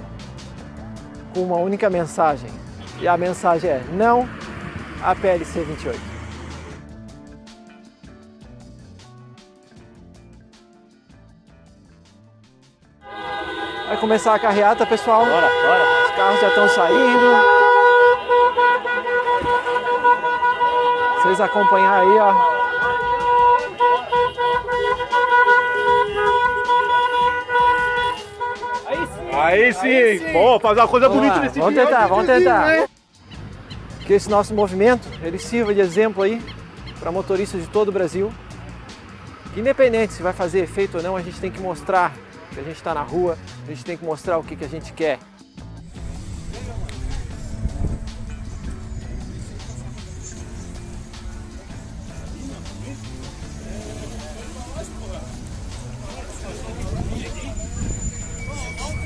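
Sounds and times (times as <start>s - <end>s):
cars: 0.0s - 7.5s, 13.0s - 59.0s
background music: 0.0s - 59.0s
car horns honking: 2.6s - 6.8s, 13.0s - 43.5s, 47.4s - 59.0s
voices: 13.3s - 45.2s, 49.1s - 59.0s
crowd noise: 15.4s - 34.0s, 48.8s - 59.0s.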